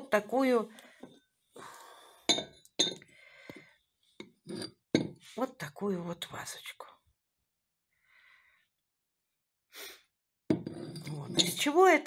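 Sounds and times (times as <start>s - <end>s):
glass dishware clinking: 2.3s - 3.0s, 10.5s - 11.7s.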